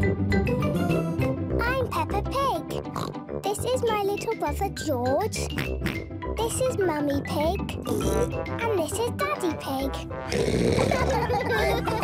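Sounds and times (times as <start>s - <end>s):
light children's music: 0.0s - 12.0s
child speaking: 1.6s - 5.5s, 6.4s - 10.1s
cartoon pig oinking: 2.7s - 3.2s, 5.3s - 6.1s, 7.8s - 8.4s, 10.3s - 12.0s.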